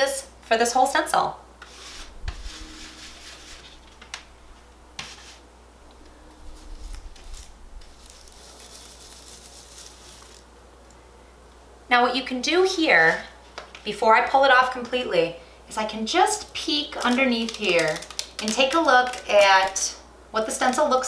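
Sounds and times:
stencil brush rubbing on wall: 1.6 - 4.0, 5.0 - 5.4, 6.5 - 10.4.

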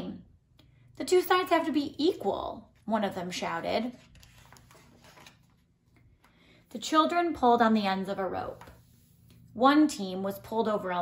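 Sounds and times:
book page turning: 3.8 - 6.1.

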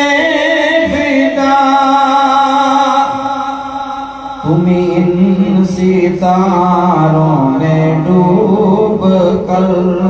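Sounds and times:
man chanting into a microphone: 0.0 - 10.0.

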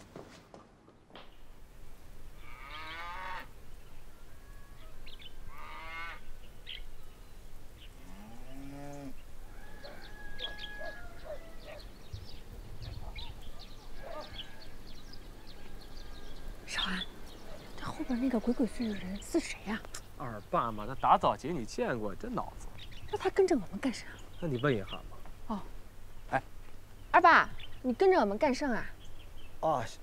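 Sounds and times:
farm animals calling: 2.3 - 7.2, 7.8 - 26.6.

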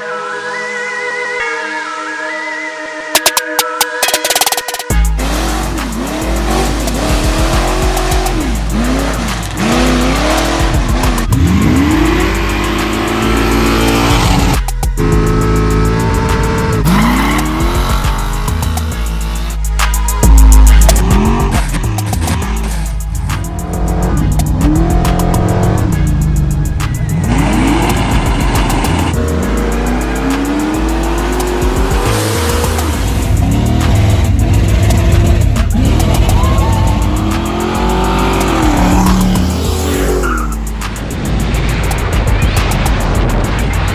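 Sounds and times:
music with heavy bass: 3.1 - 43.9
car engines revving: 4.3 - 43.9.

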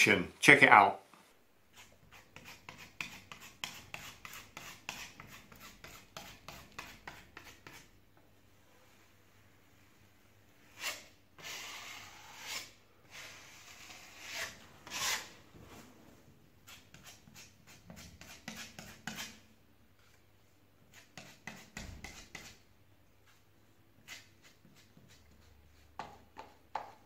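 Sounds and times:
scraper spreading plaster: 1.7 - 7.9, 10.7 - 16.0, 16.6 - 20.2, 20.8 - 22.6, 23.2 - 27.0.

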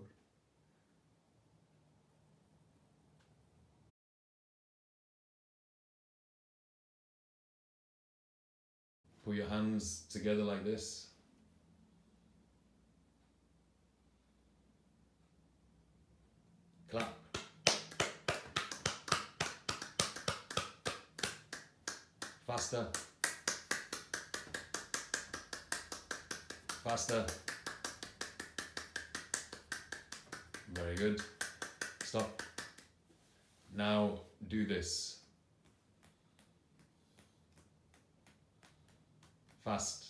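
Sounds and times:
person speaking: 16.9 - 32.8, 38.6 - 40.0
man clapping hands: 17.0 - 32.9, 35.6 - 39.8.

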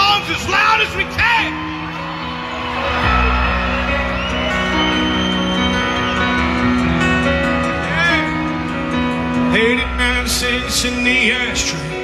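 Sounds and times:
live country band playing: 0.0 - 12.0.

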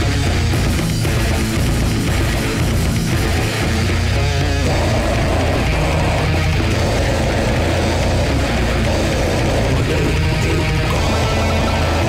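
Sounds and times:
death metal music: 0.0 - 12.0.

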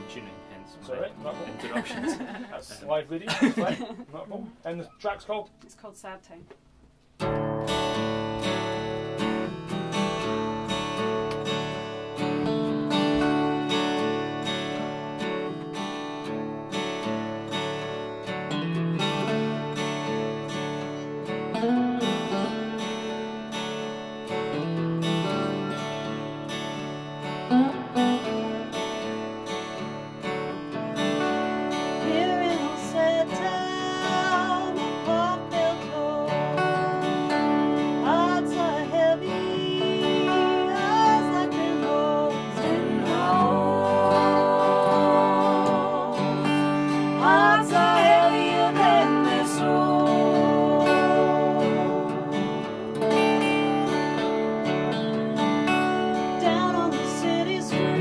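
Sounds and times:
guitars playing slow blues: 0.0 - 2.6, 7.2 - 58.0.

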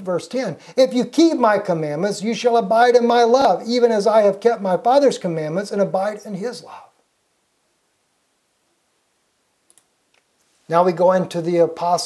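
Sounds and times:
faint clicks: 9.6 - 10.4.

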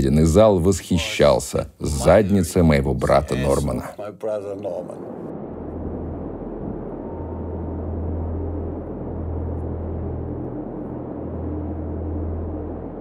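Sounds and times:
low pulsing rumble: 4.8 - 13.0.

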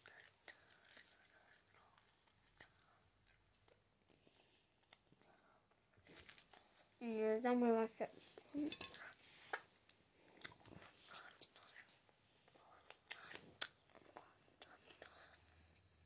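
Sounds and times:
person chewing food: 0.0 - 6.9, 8.4 - 16.0.

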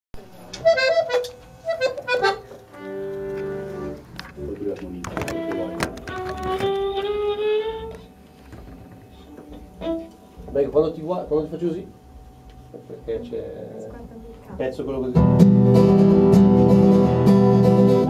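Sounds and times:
accordion playing: 0.5 - 8.3, 9.2 - 10.3.

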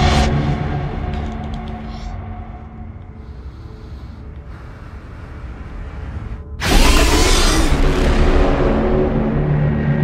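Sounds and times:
loud noisy hit with whining tones: 6.6 - 9.8.

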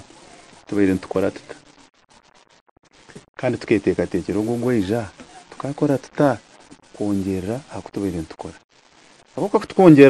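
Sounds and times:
man speaking: 0.7 - 1.6, 3.4 - 8.6, 9.4 - 10.0.

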